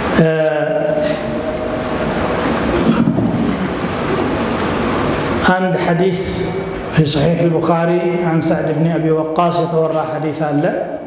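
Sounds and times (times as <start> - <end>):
loud rushing noise: 0.0 - 9.0
man speaking: 0.1 - 1.8, 5.4 - 11.0.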